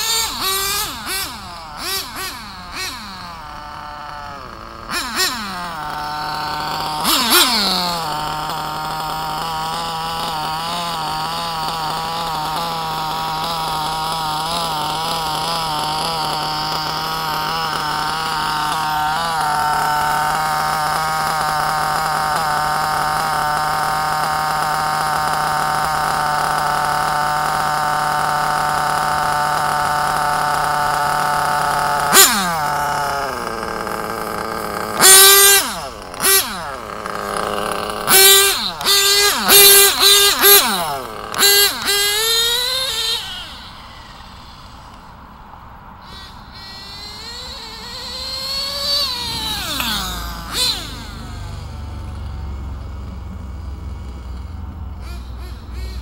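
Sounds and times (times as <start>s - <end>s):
small glow engine revving: 0.0s - 56.0s.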